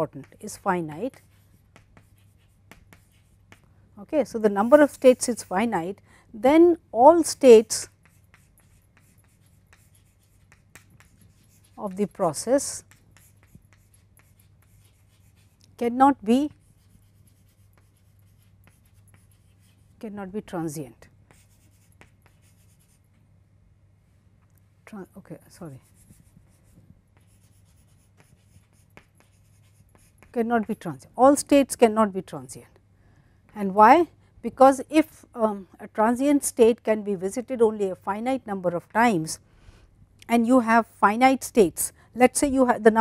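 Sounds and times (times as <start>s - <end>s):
chalk tapping and scratching: 0.0s - 3.7s, 7.3s - 20.1s, 20.9s - 23.2s, 25.6s - 31.0s
low electrical hum: 0.0s - 43.0s.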